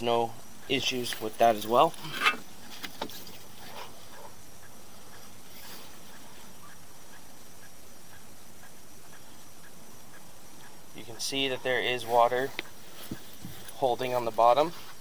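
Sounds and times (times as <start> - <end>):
steady hiss: 0.0 - 15.0.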